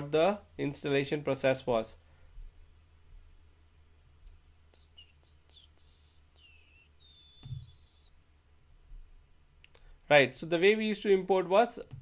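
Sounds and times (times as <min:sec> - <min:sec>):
soft thump: 0:07.4 - 0:07.8.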